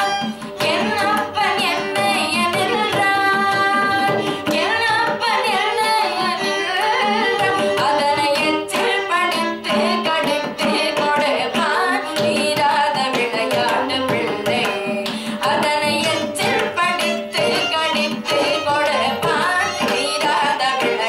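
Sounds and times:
bowed violin: 0:00.0 - 0:21.0.

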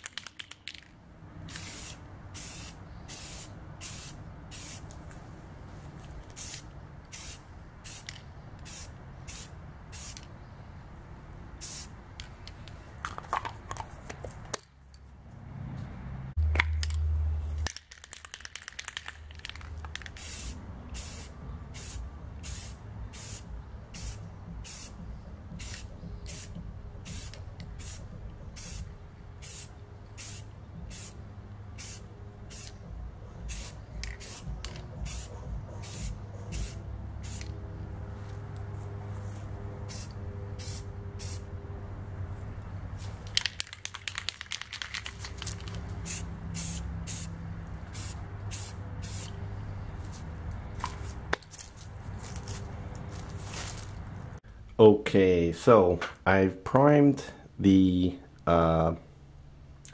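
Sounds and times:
aerosol spray hissing bursts: 0:01.5 - 0:04.9, 0:20.2 - 0:25.0, 0:25.6 - 0:28.8, 0:29.4 - 0:31.2, 0:33.5 - 0:37.4, 0:39.9 - 0:41.5, 0:46.0 - 0:47.3, 0:47.9 - 0:49.3.

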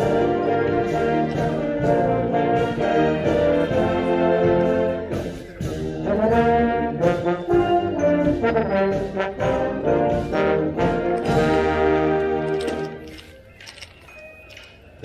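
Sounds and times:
marching band brass playing: 0:00.0 - 0:13.2.

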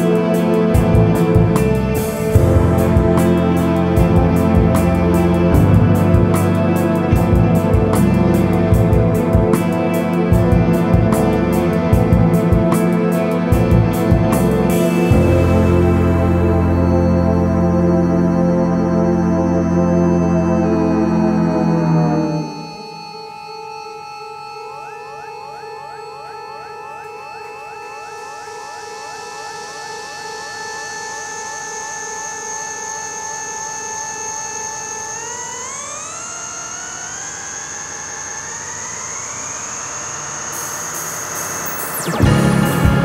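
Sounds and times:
live band chord: 0:00.0 - 0:22.8, 0:42.0 - 0:43.0
synthesizer chord and sweeps: 0:00.0 - 0:43.0.

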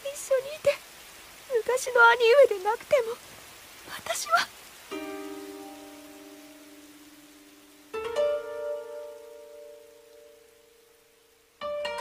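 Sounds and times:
plucked zither-like string instrument: 0:11.6 - 0:12.0.

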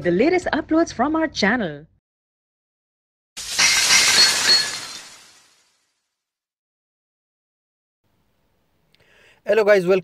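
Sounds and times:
glass shattering: 0:03.4 - 0:05.8.

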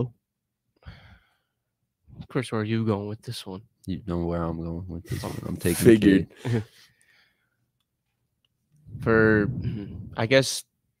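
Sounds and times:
faint breath into microphone: 0:00.8 - 0:01.6.

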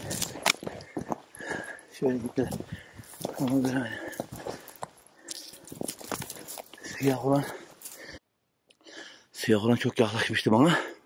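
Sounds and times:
footsteps on dry grass: 0:00.0 - 0:08.2.

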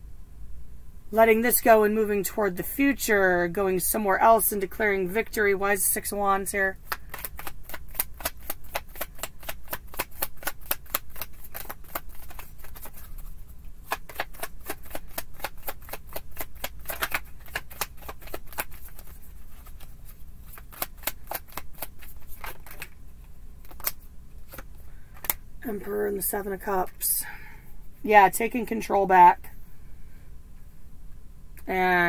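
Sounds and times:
cards being shuffled by hand: 0:06.8 - 0:25.4.

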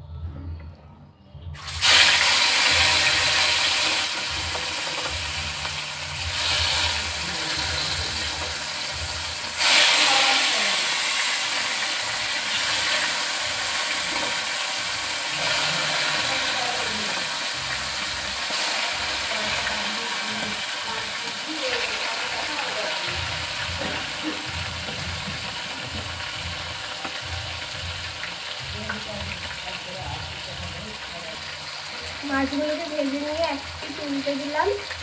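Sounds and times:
fish sizzling in hot oil: 0:01.6 - 0:35.0.

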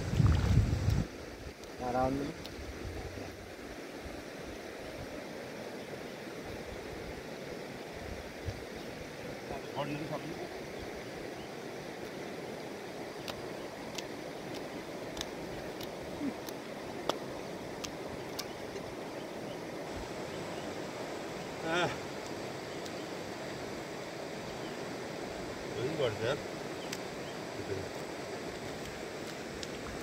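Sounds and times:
river flowing: 0:00.0 - 0:30.0.

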